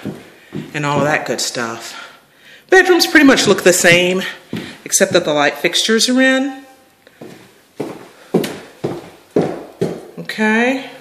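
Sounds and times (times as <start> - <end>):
footsteps in empty room: 0.0 - 10.2.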